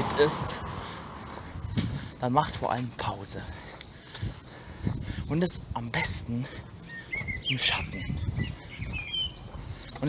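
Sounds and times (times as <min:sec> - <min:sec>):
steady low rumble: 0:00.0 - 0:10.0
high bird chirps: 0:06.8 - 0:10.0.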